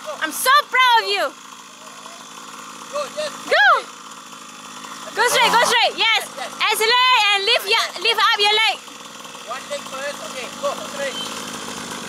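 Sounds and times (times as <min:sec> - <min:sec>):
dirt bike motor running: 0:00.0 - 0:12.0.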